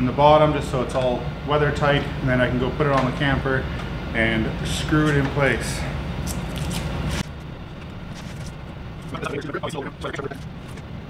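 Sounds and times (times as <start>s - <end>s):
background hum: 0.0s - 11.0s.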